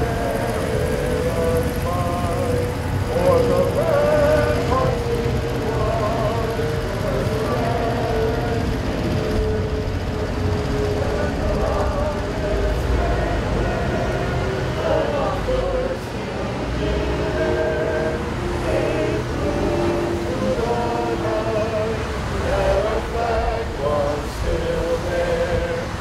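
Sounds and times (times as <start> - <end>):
group of people singing: 0.0 - 26.0
low steady rumble: 0.0 - 26.0.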